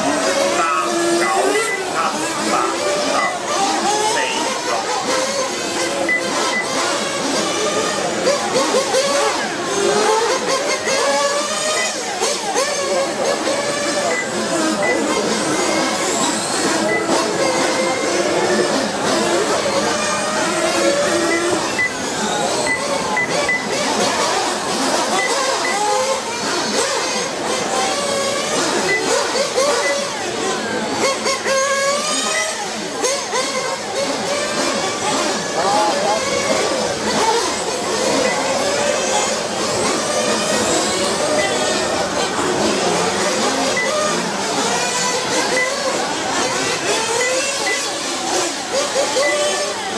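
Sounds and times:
toy motorcycle motors racing: 0:00.0 - 0:49.9
short high beeps: 0:01.2 - 0:02.0, 0:02.7 - 0:03.4, 0:06.1 - 0:06.8, 0:16.9 - 0:17.2, 0:21.2 - 0:22.0, 0:22.7 - 0:23.7, 0:41.4 - 0:41.7.

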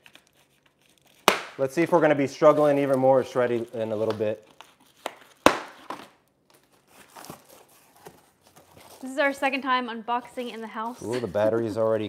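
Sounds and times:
packing foam crinkling rustles: 0:00.0 - 0:09.8.

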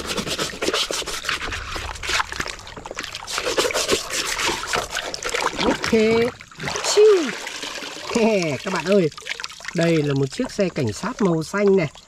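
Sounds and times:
brush scrubbing plastic toy: 0:00.0 - 0:02.3, 0:03.2 - 0:05.3
water sloshing and trickling: 0:00.0 - 0:12.0.

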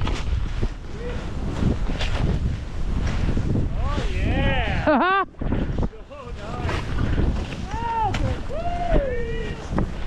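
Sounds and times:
skis moving through powder snow: 0:00.0 - 0:04.9, 0:05.7 - 0:10.0
wind rushing over microphone: 0:00.0 - 0:10.0
person whooping: 0:07.7 - 0:09.7.

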